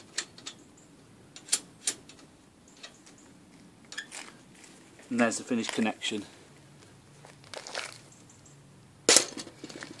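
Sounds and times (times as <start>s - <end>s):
rustling: 2.8s - 8.3s.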